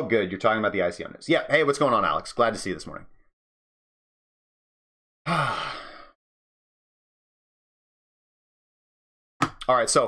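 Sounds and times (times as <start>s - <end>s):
man sighing: 5.2s - 6.2s.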